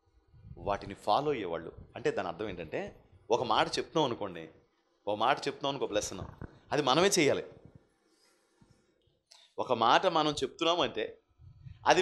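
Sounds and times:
man speaking into microphone: 0.5 - 4.5, 5.1 - 7.6, 9.6 - 12.0.

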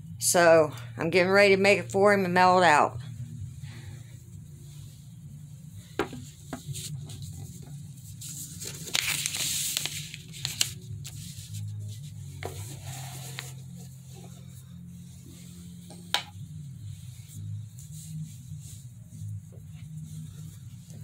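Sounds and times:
steady low hum: 0.0 - 21.0
paper and pens handling: 6.6 - 14.4
paper rustle: 6.7 - 14.1.

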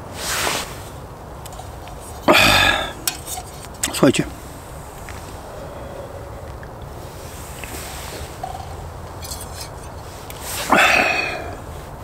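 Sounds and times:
low steady background rumble: 0.0 - 12.0
person sniffing loudly: 10.5 - 11.7.

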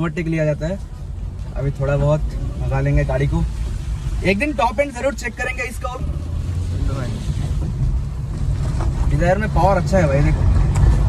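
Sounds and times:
car engine and road rumble: 0.0 - 11.0.

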